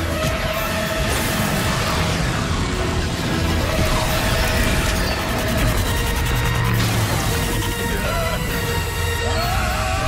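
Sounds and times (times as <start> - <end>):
orchestral action music: 0.0 - 10.0
speeder engine: 0.0 - 10.0.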